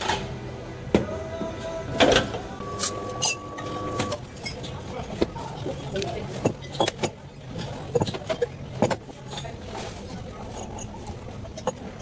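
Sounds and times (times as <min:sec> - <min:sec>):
low background hum: 0:00.0 - 0:12.0
glassware clinking: 0:10.4 - 0:12.0.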